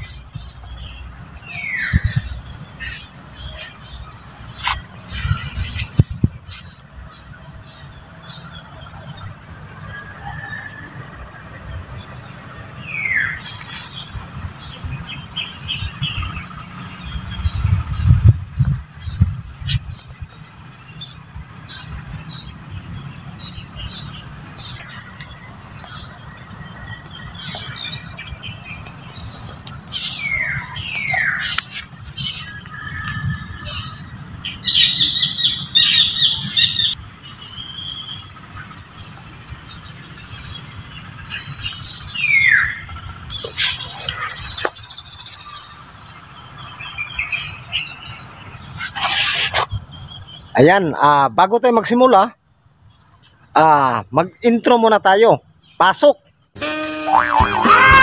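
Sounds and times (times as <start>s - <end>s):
shrill insect chorus: 0.0s - 17.2s, 18.6s - 58.0s
birds chirping: 0.0s - 52.2s.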